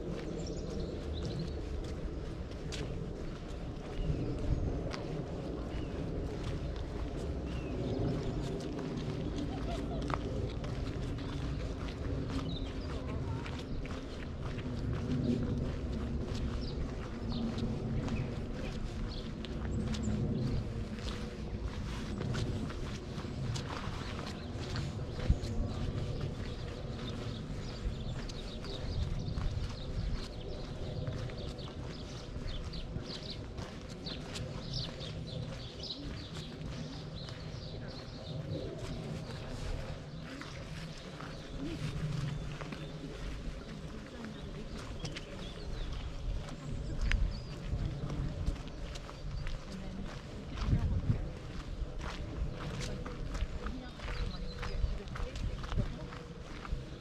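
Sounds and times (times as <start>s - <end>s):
footsteps on dirt path: 0.0s - 57.0s
low rumble: 0.0s - 57.0s.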